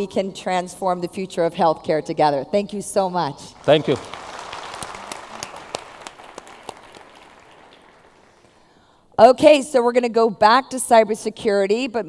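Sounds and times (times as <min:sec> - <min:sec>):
audience applauding: 0:03.5 - 0:08.7.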